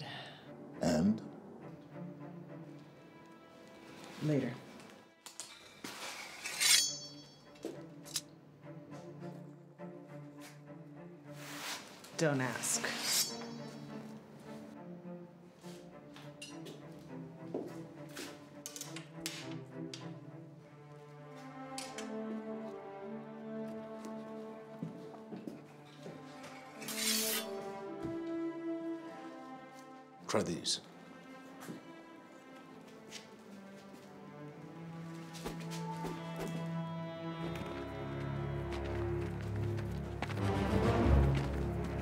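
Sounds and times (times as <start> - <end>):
film score held notes: 0.0 - 42.0
low background music: 0.0 - 42.0
sword blade swish: 6.0 - 7.4, 12.8 - 13.9, 26.8 - 27.6
sharp metallic clink: 6.4 - 7.5, 13.0 - 13.9.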